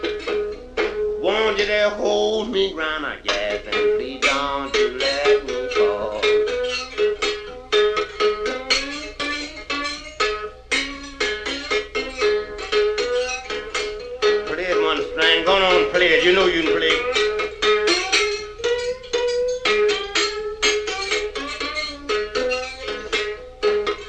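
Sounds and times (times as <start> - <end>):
one-string diddley bow blues: 0.0 - 24.0.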